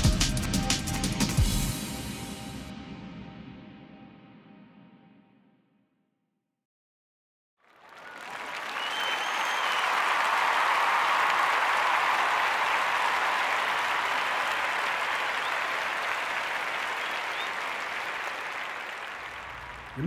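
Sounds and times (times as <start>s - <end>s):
crowd applause: 7.6s - 20.0s
whistles: 7.9s - 20.0s.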